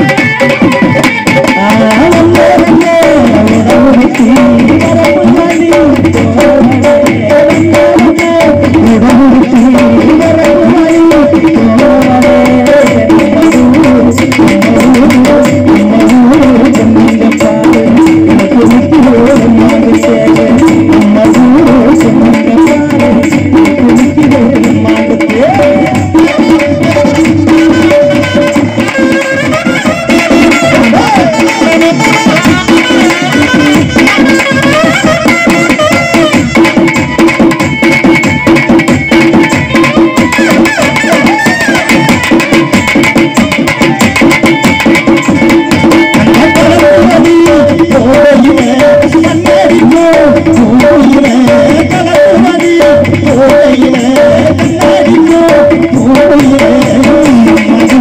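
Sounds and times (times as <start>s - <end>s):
person singing: 0.0s - 58.0s
steady drum beats: 0.0s - 58.0s.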